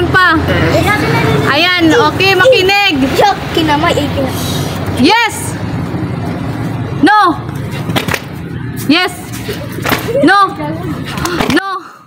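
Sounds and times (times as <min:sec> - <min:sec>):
sharp slaps: 0:07.8 - 0:08.4, 0:09.8 - 0:10.2.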